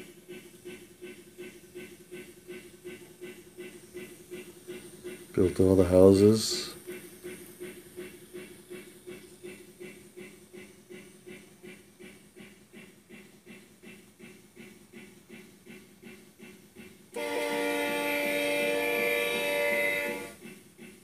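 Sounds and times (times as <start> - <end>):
rhythmic model train sound: 0.0 - 21.0.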